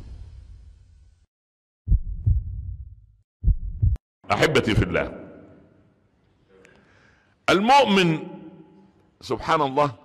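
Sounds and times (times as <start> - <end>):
heartbeat double thumps: 1.9 - 4.0.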